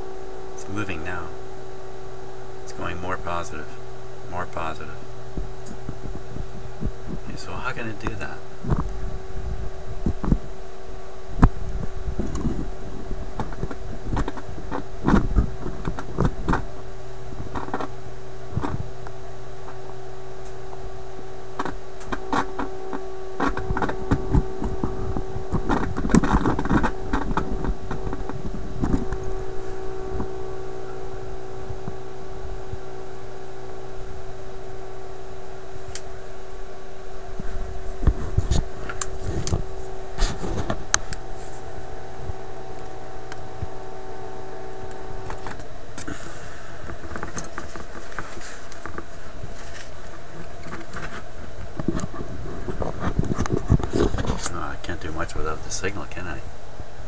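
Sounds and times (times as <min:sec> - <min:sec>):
radio hum and tone: 0:00.0 - 0:57.0
crackles and clicks: 0:05.3 - 0:07.4, 0:11.3 - 0:36.2, 0:37.2 - 0:43.8, 0:44.4 - 0:56.4.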